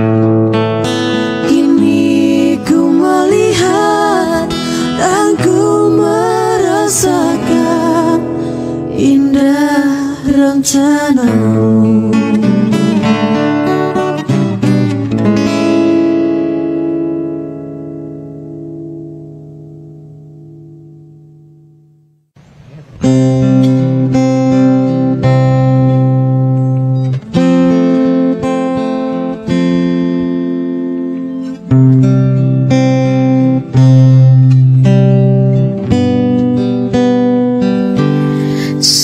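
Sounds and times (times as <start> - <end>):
acoustic guitar strumming chords: 0.0 - 39.0.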